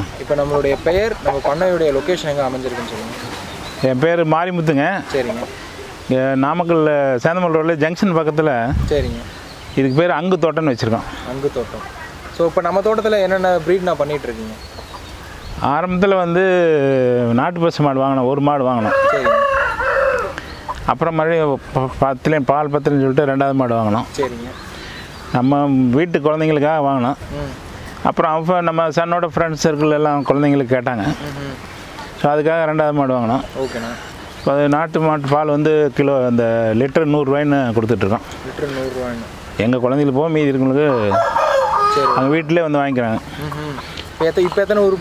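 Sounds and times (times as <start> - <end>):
rooster crowing: 18.8 - 20.4, 40.8 - 42.6
man's voice: 32.2 - 45.0.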